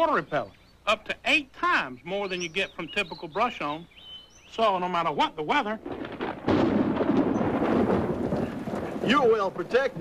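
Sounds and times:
thunder clap rumbling: 5.8 - 10.0.

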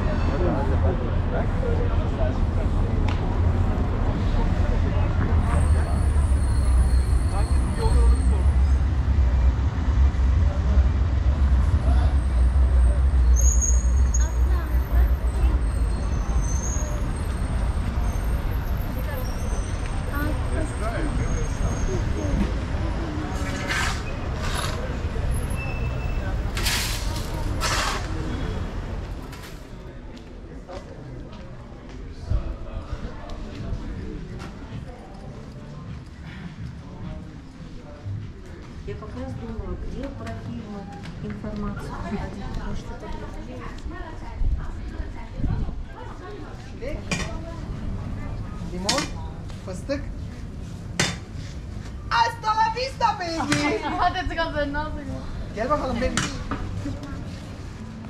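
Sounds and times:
road traffic rumble: 0.0 - 58.0
voices of passers-by: 0.0 - 58.0.

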